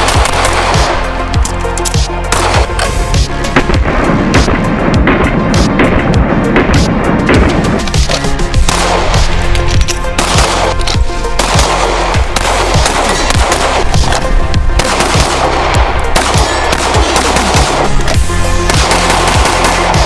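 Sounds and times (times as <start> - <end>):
pistol shots: 0.0 - 1.2, 1.8 - 2.9, 6.6 - 20.0
music with heavy regular beat: 0.0 - 20.0.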